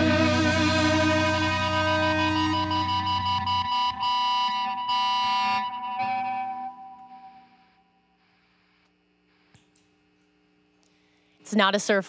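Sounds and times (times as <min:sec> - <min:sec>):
rock band final chords: 0:00.0 - 0:07.6.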